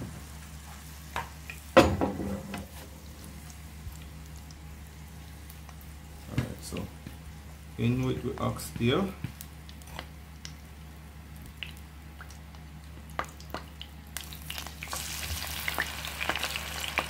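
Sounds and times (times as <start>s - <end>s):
meat sizzling in hot oil: 13.2s - 17.0s.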